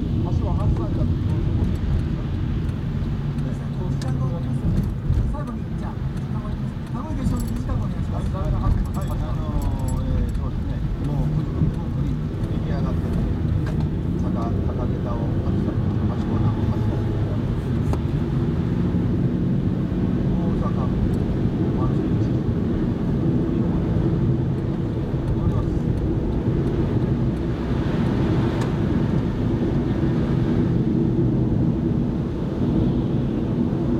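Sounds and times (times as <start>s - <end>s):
car engine and tyre drone: 0.0s - 33.9s.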